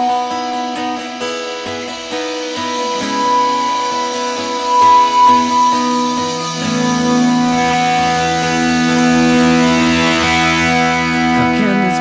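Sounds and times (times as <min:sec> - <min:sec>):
rock band with held guitar notes: 0:00.0 - 0:12.0.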